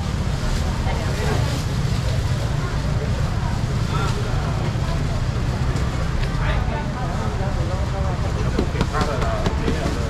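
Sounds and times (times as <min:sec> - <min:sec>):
people talking faintly: 0:00.4 - 0:10.0.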